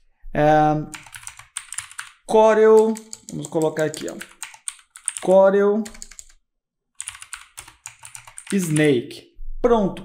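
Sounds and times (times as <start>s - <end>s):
typing on computer keyboard: 0.9s - 6.4s, 7.0s - 8.9s.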